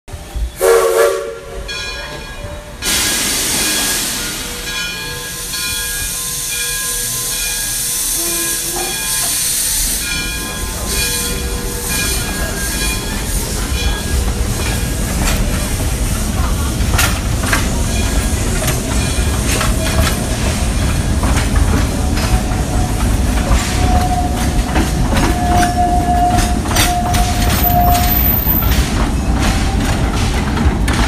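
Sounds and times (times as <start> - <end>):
moving train rumble: 0.1 - 31.0
train warning horn blast: 0.6 - 1.7, 8.1 - 9.0, 25.2 - 28.5.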